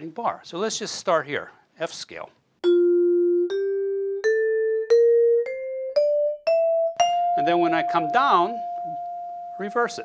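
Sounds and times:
vibraphone playing a scale: 2.6 - 10.0.

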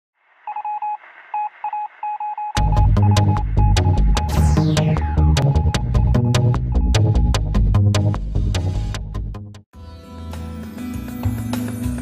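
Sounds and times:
electronic beeps: 0.5 - 7.4.

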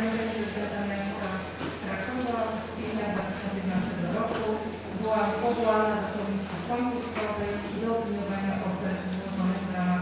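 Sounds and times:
woman speaking through microphone: 0.0 - 10.0.

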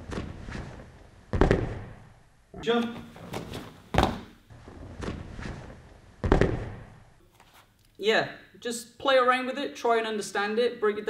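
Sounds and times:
bare feet thudding on mats: 0.0 - 2.1, 2.8 - 7.6.

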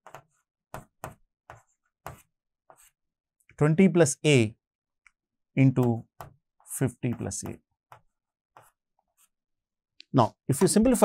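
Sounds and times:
marker scratching on whiteboard: 0.0 - 3.0, 5.7 - 9.4.

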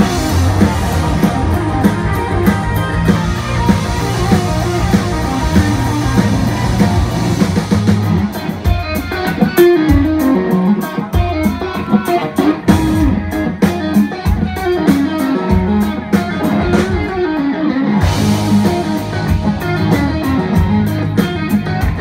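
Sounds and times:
bass guitar: 0.0 - 22.0
drums and cymbals: 0.0 - 22.0
electric guitar lead: 0.0 - 22.0.

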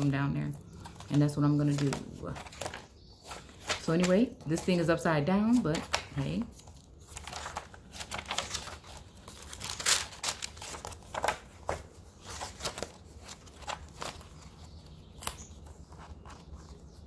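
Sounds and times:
paper pages rustling: 0.0 - 17.0.

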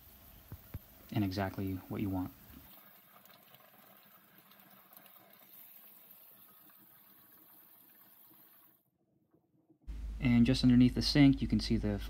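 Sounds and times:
faucet running into steel sink: 1.0 - 8.8.

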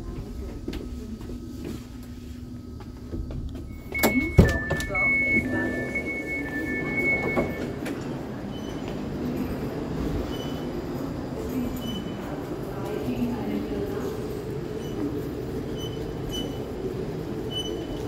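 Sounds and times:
two-tone electronic door beeping: 3.6 - 8.9.

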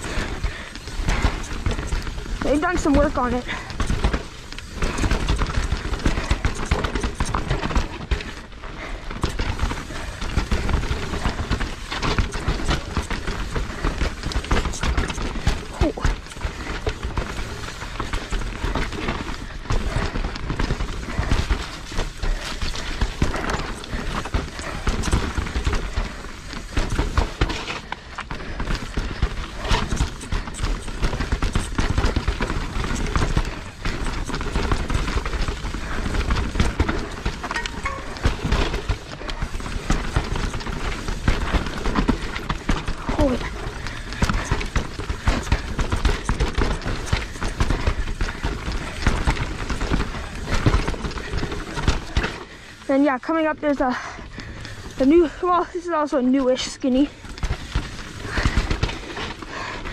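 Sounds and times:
bike frame and chain rattling: 0.0 - 59.9
tyres crunching over stones: 0.0 - 59.9.

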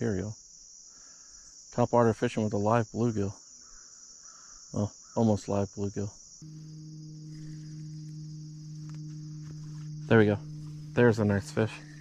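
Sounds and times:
insects trilling: 0.0 - 12.0
low steady hum: 6.4 - 12.0.

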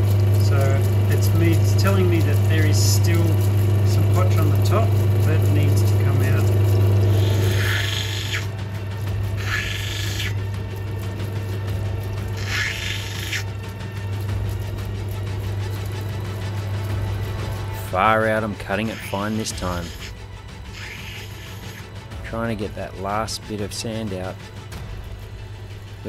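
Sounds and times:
background music: 0.0 - 26.0
grinding wheel humming: 0.0 - 26.0.

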